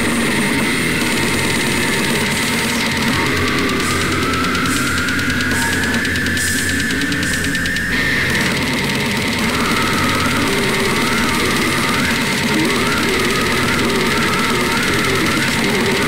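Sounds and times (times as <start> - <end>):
death metal music: 0.0 - 16.0
wavering high guitar line: 0.0 - 16.0.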